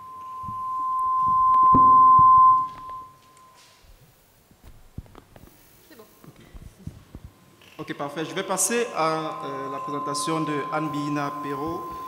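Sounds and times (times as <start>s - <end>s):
microphone feedback whistle: 0.0s - 3.7s, 8.9s - 12.0s.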